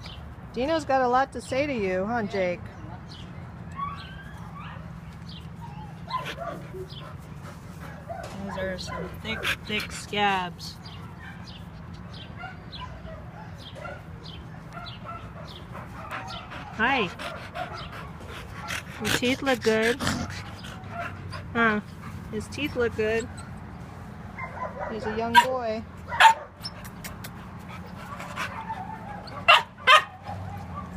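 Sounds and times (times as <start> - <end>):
dog yipping and whining: 3.7 - 4.9, 5.6 - 6.8
dog barking: 24.4 - 26.6, 28.5 - 30.9.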